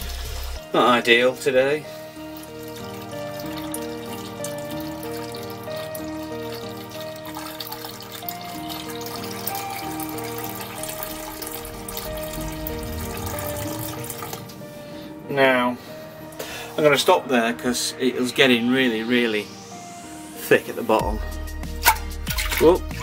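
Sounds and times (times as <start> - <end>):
liquid trickling into bucket: 0.0 - 0.9, 1.6 - 15.1, 21.7 - 23.0
background music: 0.0 - 23.0.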